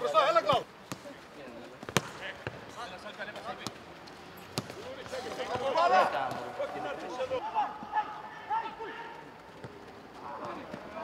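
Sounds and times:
football being kicked: 1.8 - 2.6.

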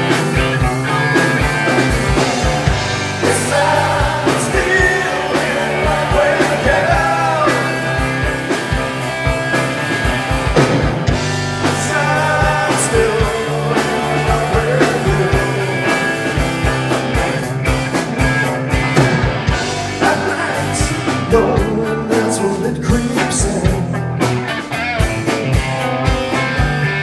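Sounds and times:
bass guitar: 0.0 - 27.0
drum kit beat: 0.0 - 27.0
electric guitars: 0.0 - 27.0.

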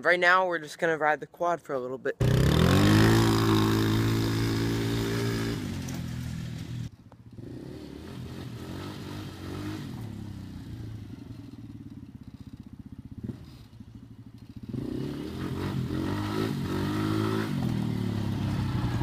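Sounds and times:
quad engine running: 2.2 - 19.0.

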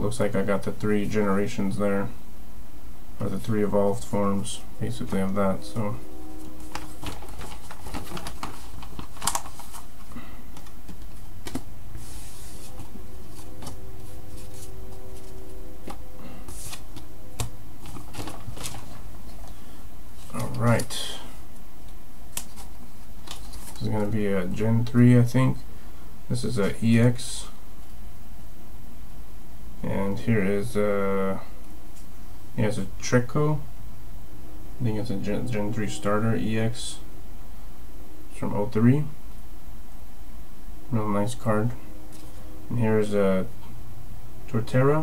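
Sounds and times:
man speaking: 0.0 - 2.2, 3.2 - 6.2, 20.3 - 21.4, 23.8 - 25.6, 26.3 - 27.6, 29.8 - 31.5, 32.6 - 33.7, 34.8 - 37.1, 38.3 - 39.2, 40.9 - 41.8, 42.7 - 43.6, 44.5 - 45.0
low background rumble: 0.0 - 26.6
steady low hum: 0.0 - 45.0
cards and plastic sleeves handled: 6.6 - 19.6, 22.3 - 24.1.

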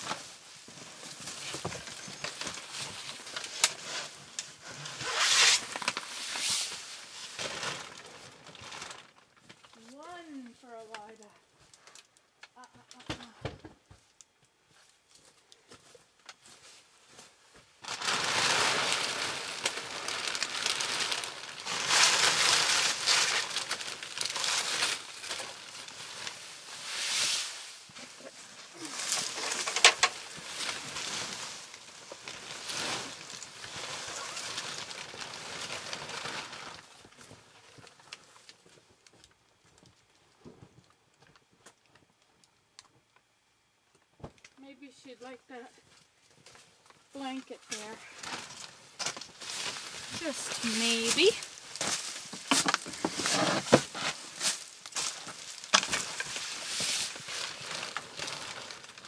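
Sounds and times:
plastic bags rustling: 0.0 - 12.1, 16.3 - 39.9, 45.8 - 59.0.

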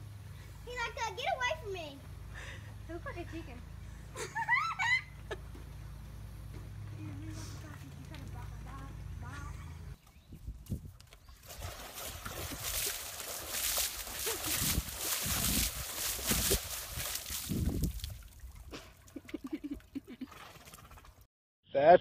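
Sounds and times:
water splashing in a plastic tub: 11.2 - 21.2.

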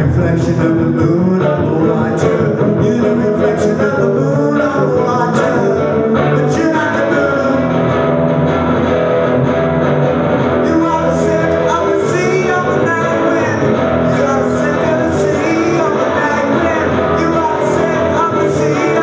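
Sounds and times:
man singing into microphone: 0.0 - 7.9, 10.6 - 19.0
strummed guitar: 0.0 - 19.0.

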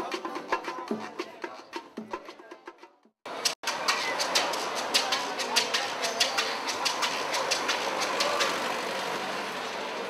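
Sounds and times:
background hubbub: 3.3 - 10.0
hand percussion clicks: 3.4 - 8.6.

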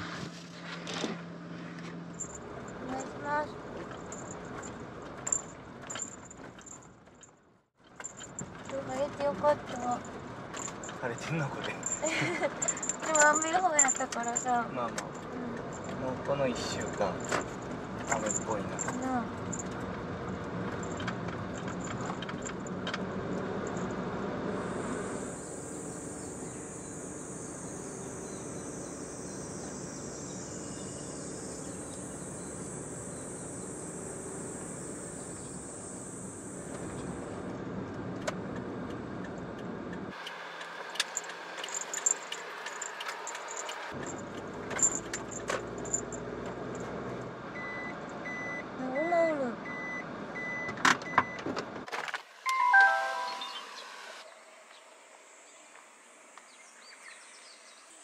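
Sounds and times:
road and engine noise: 0.0 - 58.0
high whine: 24.5 - 37.2, 52.5 - 54.2
evenly spaced beeps: 52.5 - 53.8.

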